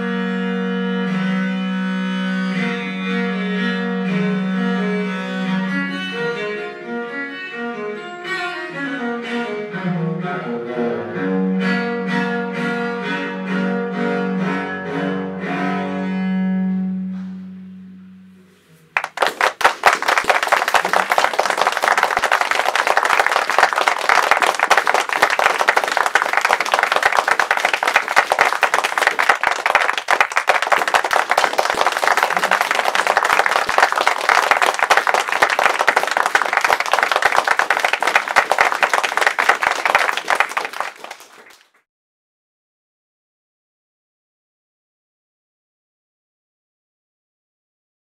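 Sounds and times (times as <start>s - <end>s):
low bowed viola note: 0.0s - 19.0s
audience applause: 19.0s - 41.7s.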